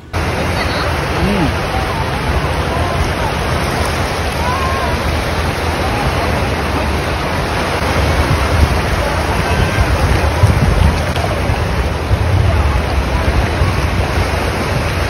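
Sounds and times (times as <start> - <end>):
faint distant voices: 0.0 - 15.0
sea surf washing: 0.0 - 15.0
wind buffeting microphone: 0.0 - 15.0.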